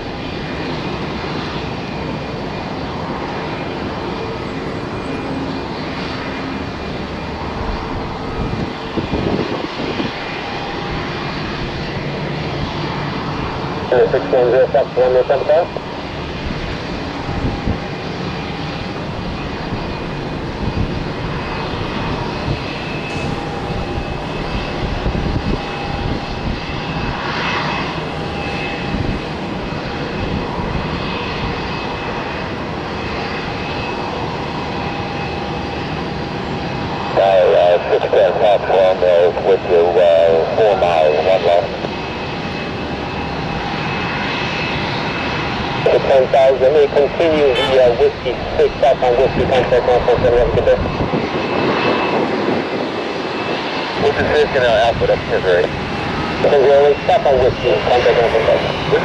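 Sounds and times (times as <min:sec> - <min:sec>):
jet engines whining: 0:00.0 - 0:59.0
radio chatter: 0:13.8 - 0:15.8, 0:37.2 - 0:41.9, 0:45.8 - 0:51.0, 0:53.9 - 0:55.7, 0:56.4 - 0:59.0.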